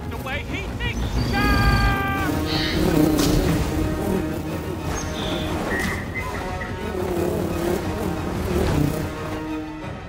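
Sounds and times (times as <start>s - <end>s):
orchestral score: 0.0s - 10.0s
rushing drone of bee flight: 1.0s - 10.0s.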